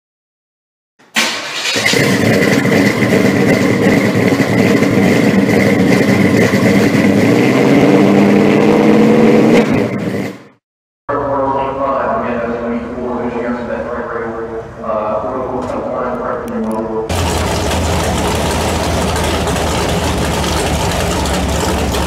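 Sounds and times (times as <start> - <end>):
car engine starting and running: 1.0 - 10.6, 14.5 - 22.0.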